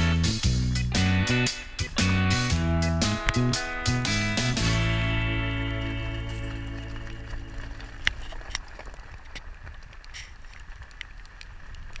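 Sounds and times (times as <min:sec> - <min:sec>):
vehicle rolling over gravel: 0:04.6 - 0:12.0.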